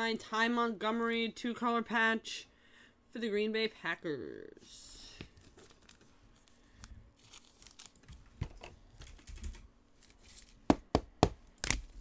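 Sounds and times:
trading cards rustling and clicking: 5.2 - 10.7.

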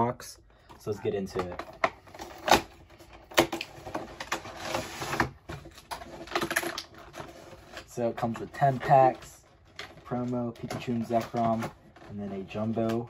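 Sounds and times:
clicks and taps handling box: 0.6 - 4.4.

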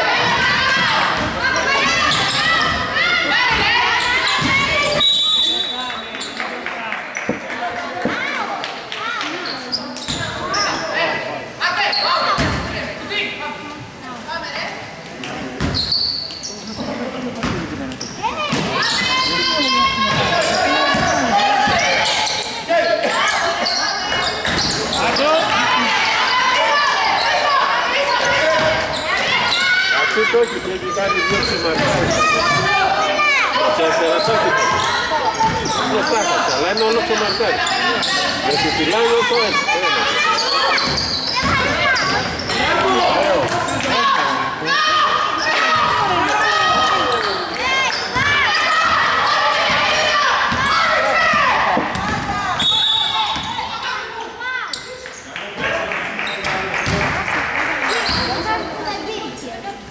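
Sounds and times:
sneakers squeaking: 0.2 - 7.4, 9.2 - 11.0, 15.4 - 44.2, 45.0 - 57.2, 57.8 - 59.2
basketball bouncing on wooden floor: 51.9 - 52.2.

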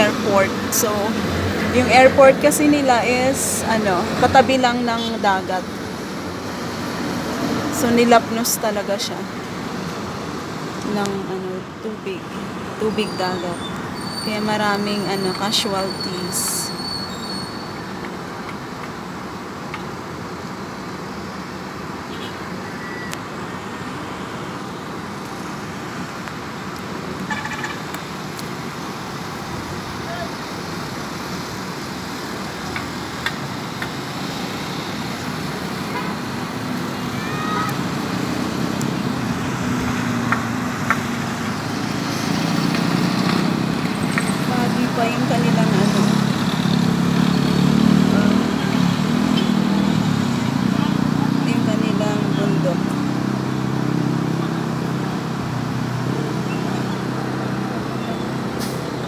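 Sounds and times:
road traffic: 0.0 - 59.0
distant voices: 33.7 - 53.4.

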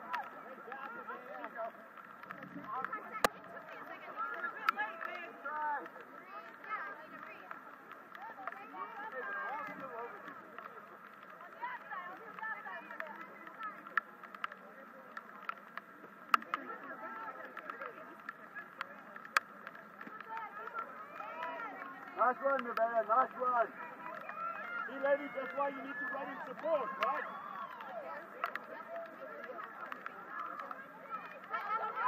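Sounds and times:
distant shouting and calling: 18.1 - 32.0.

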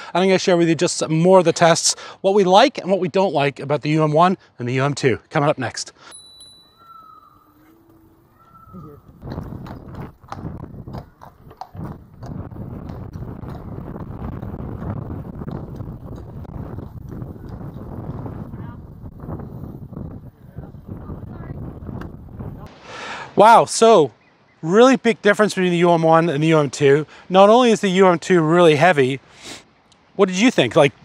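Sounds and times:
wind rumble on microphone: 8.4 - 22.7.

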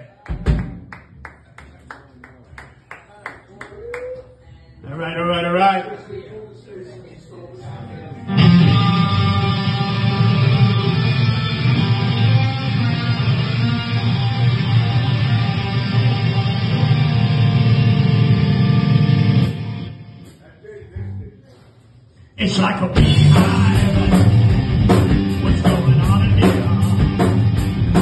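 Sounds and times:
electric guitars ringing chord: 7.7 - 20.2.

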